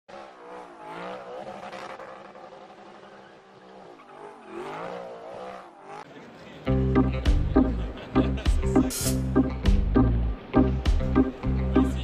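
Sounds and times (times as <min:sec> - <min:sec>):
car engine revving: 0:00.1 - 0:06.2.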